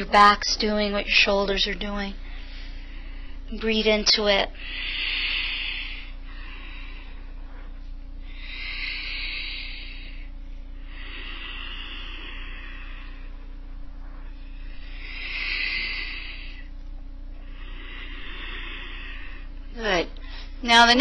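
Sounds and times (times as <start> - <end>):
low electrical hum: 0.0 - 21.0
slow deep breathing: 2.2 - 3.5, 4.5 - 20.6.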